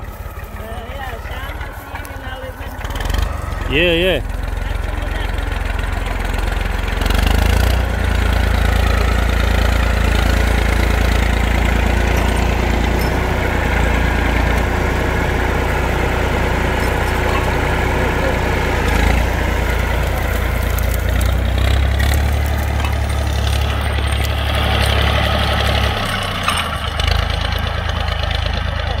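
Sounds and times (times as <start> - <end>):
tractor diesel engine running: 0.0 - 29.0.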